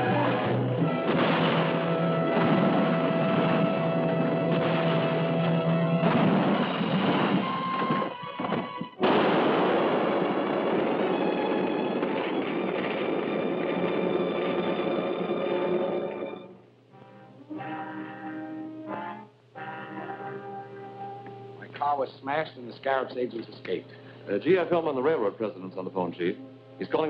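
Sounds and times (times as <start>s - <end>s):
dramatic orchestral music: 0.0s - 7.9s, 11.0s - 21.2s
car crash explosion: 0.0s - 15.3s
noisy rumble: 0.0s - 17.6s.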